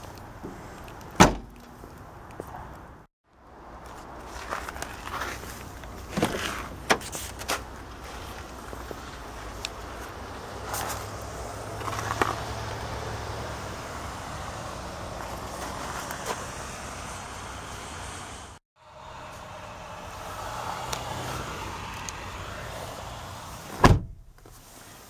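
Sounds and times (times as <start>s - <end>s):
loud thump: 1.2s - 1.5s, 23.8s - 24.3s.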